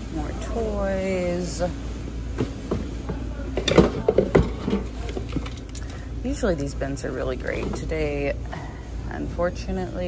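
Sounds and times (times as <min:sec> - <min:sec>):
objects clattering in plastic bin: 0:02.4 - 0:06.0.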